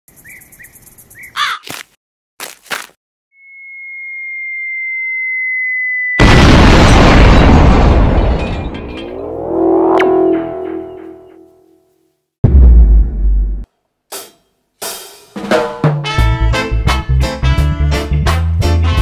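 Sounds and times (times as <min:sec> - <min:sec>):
bird chirping: 0:00.1 - 0:01.6
harsh caws: 0:01.4 - 0:01.8
falling whistle: 0:03.3 - 0:06.2
loud explosion: 0:06.2 - 0:10.9, 0:12.4 - 0:13.6
rising tones: 0:08.7 - 0:11.7.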